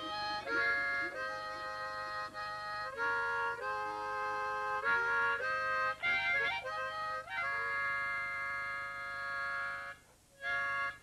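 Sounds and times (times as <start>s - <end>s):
free-reed instrument chord: 0.0s - 11.0s.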